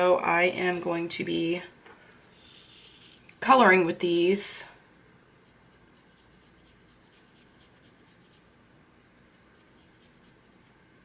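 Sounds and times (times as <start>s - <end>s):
pen scratching on paper: 5.5s - 8.5s, 9.3s - 10.6s.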